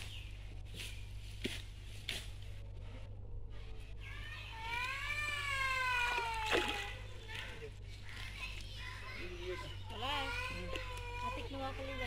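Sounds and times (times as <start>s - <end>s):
hand net in pond water: 4.6s - 8.6s.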